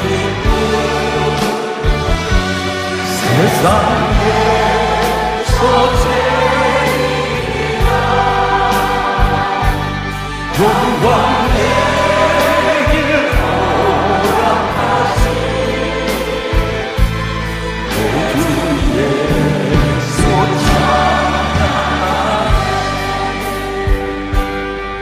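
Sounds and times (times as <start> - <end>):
choir singing: 0.0 - 24.4
band playing: 0.0 - 25.0
lead singer: 0.0 - 25.0
drum beat: 19.7 - 22.7.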